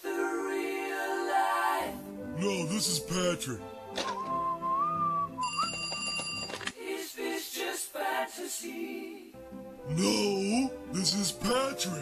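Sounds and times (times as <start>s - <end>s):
whistled tune over music: 4.0s - 6.2s
high electronic ring: 5.4s - 6.6s.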